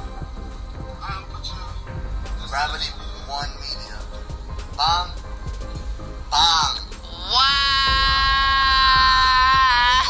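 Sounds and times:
man singing a high note: 6.3 - 10.0.

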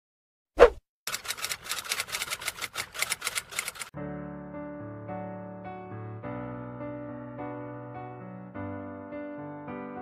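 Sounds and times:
typewriter typing clicks: 1.1 - 3.9
soft electric piano music: 4.0 - 10.0.

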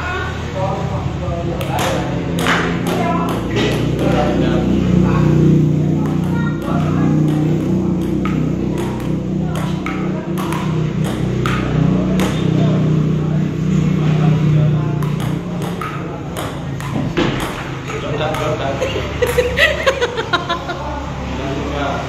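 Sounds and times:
table tennis ball clicking: 1.6 - 4.4, 6.0 - 12.6, 15.0 - 19.6.

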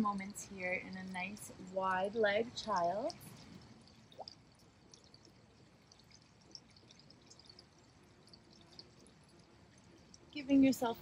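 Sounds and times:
soft high ticks: 2.6 - 10.4.

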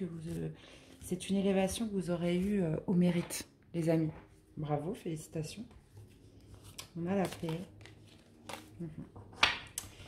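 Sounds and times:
cards rustling: 6.0 - 8.8.

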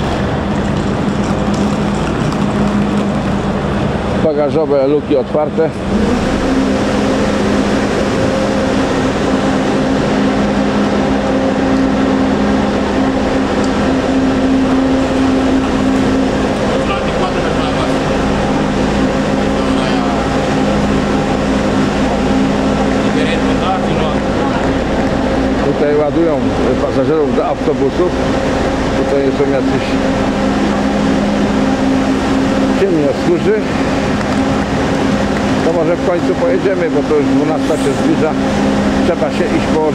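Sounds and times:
idling coaches humming: 0.0 - 39.9.

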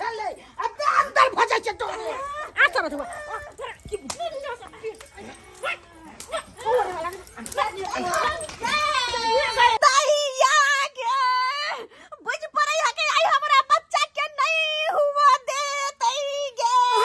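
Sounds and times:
excited voices talking: 0.0 - 17.0
woman wailing: 0.6 - 11.8, 16.3 - 17.0.

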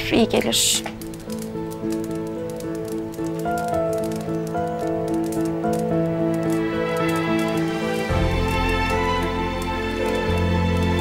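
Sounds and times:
faint crackling: 0.0 - 11.0
soft music with held notes: 0.0 - 11.0.

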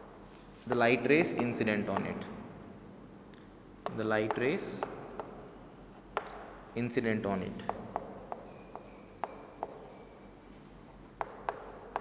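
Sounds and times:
chalk tapping on board: 0.0 - 2.2, 3.8 - 6.5, 7.6 - 12.0
chalk scratching on chalkboard: 4.3 - 6.2, 7.6 - 12.0.

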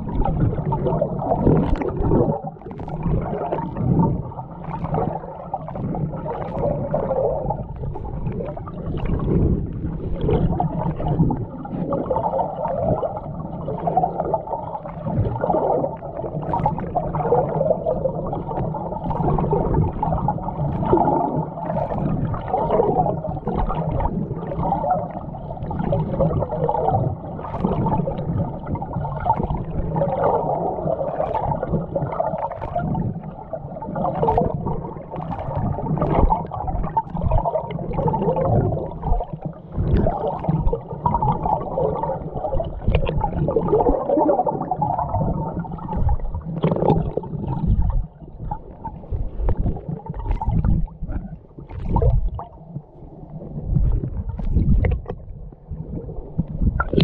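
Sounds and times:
underwater rumble: 0.0 - 57.0
water swishes and gurgles: 0.0 - 57.0.

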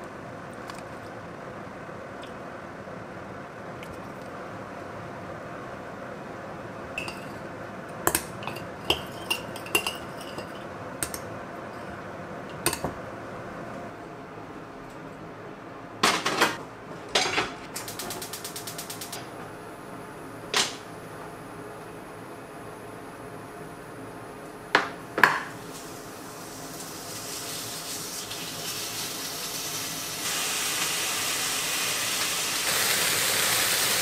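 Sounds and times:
kitchenware clattering: 8.1 - 11.2, 16.0 - 17.6
metal spoon clinking glass bowl: 8.1 - 11.2.

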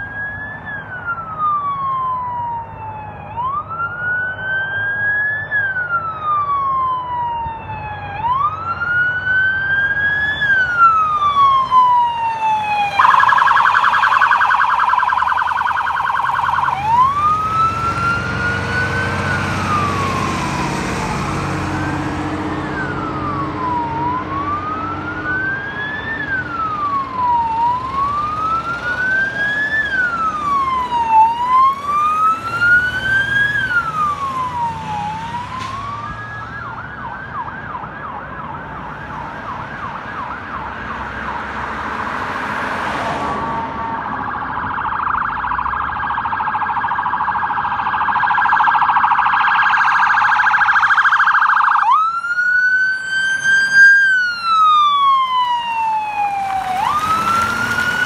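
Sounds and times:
siren yelp and warble: 0.0 - 41.5, 43.7 - 58.0
emergency vehicle siren wailing: 0.0 - 58.0.

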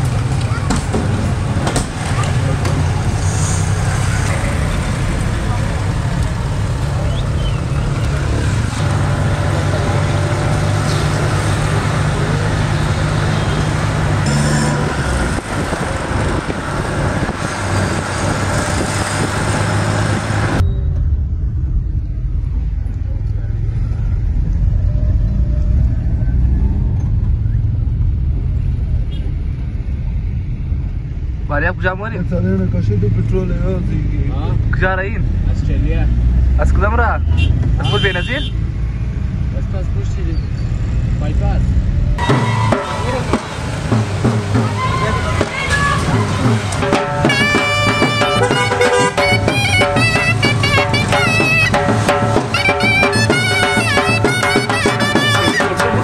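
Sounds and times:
street traffic noise: 0.0 - 56.0
van engine and road rumble: 0.0 - 56.0.

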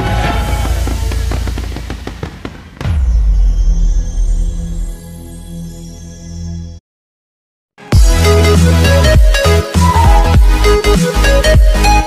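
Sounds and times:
fireworks crackling: 0.0 - 3.0
sudden loud hit: 0.0 - 5.1
music: 0.0 - 6.8, 7.8 - 12.0.

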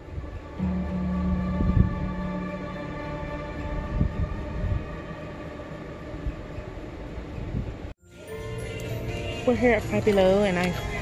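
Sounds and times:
low rumbling drone: 0.0 - 7.9.

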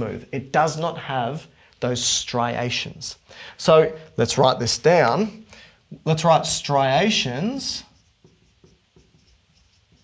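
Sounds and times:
marker writing on a whiteboard: 7.5 - 10.0.

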